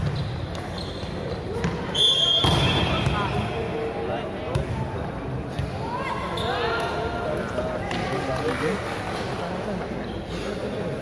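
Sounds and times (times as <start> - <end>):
crowd and players murmuring: 0.0 - 11.0
volleyball strikes: 1.5 - 3.5.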